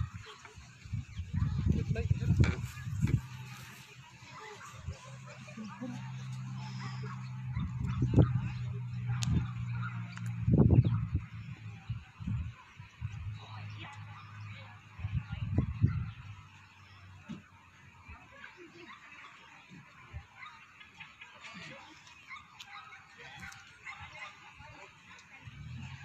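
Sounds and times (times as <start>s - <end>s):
dogs barking: 0.0s - 16.9s, 18.0s - 26.0s.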